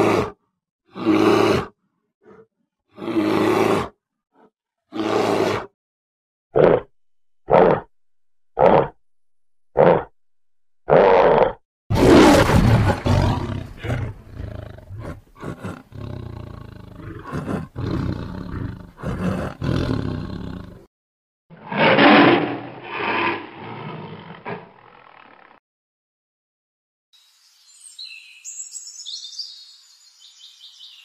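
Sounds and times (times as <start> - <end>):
tigers growling and roaring: 1.0 - 1.7, 3.0 - 3.9, 10.9 - 20.9, 21.6 - 25.5.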